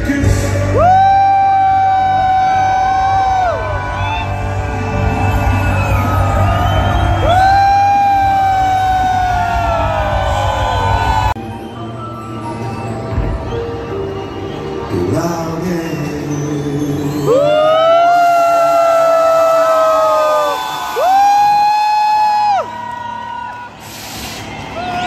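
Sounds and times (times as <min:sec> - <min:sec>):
live music over stadium speakers: 0:00.0 - 0:25.0.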